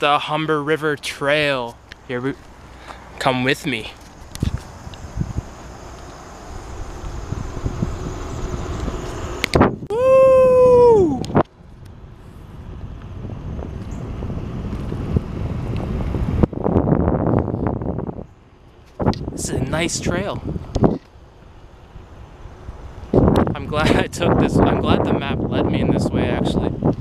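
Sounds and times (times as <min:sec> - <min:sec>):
bicycle rolling on pavement: 0:03.8 - 0:09.6, 0:11.6 - 0:18.0
wind on microphone: 0:04.0 - 0:21.2, 0:21.9 - 0:27.0.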